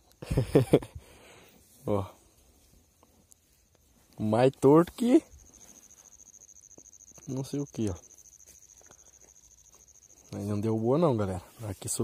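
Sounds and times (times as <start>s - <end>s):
faint ticks: 2.9s - 10.5s
faint high-pitched tone: 4.3s - 11.5s.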